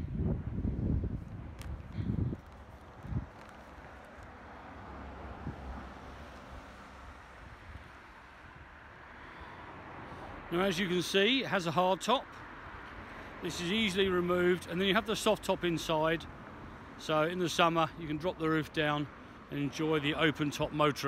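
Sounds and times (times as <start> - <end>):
wind buffeting microphone: 0.0 - 8.0.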